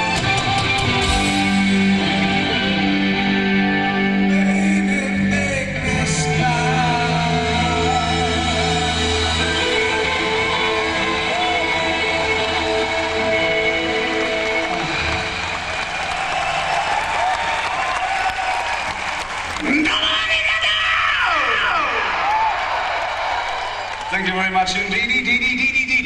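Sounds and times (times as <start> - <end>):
crowd cheering: 6.6 - 25.4
crowd whistling: 7.5 - 19.6, 21.6 - 24.4.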